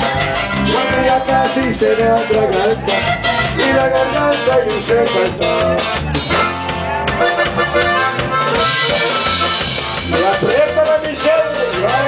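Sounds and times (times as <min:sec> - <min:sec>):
accordion melody: 0:00.0 - 0:12.0
bass: 0:00.0 - 0:12.0
drums: 0:00.0 - 0:12.0
guitar: 0:00.0 - 0:12.0.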